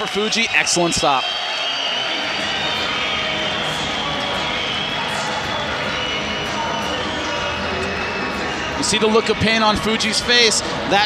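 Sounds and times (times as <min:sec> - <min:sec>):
arena crowd shouting and cheering: 0:00.0 - 0:11.0.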